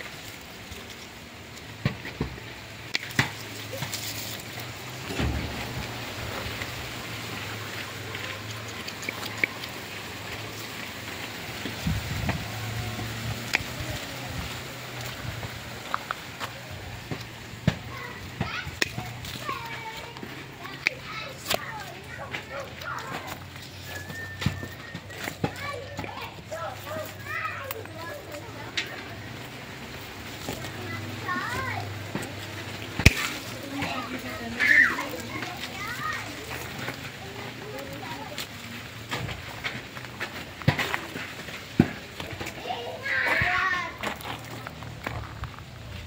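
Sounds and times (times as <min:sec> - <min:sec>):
children's voices: 0:00.0 - 0:46.0
pruning shears snipping twigs: 0:15.8 - 0:29.0, 0:30.1 - 0:37.1
child calling out: 0:34.5 - 0:36.2, 0:42.7 - 0:44.0.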